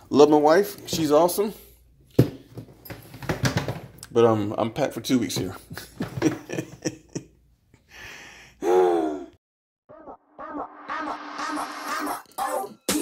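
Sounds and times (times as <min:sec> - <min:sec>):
hip-hop music with vocals: 0:09.9 - 0:13.0.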